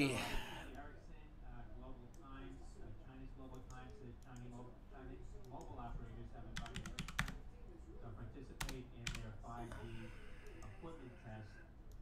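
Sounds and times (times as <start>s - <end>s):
computer keyboard typing: 6.5s - 7.4s, 8.6s - 9.3s.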